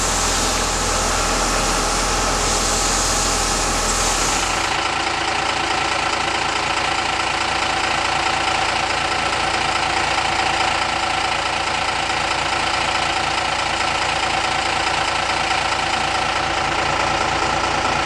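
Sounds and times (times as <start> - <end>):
fire engine idling: 0.0 - 18.0.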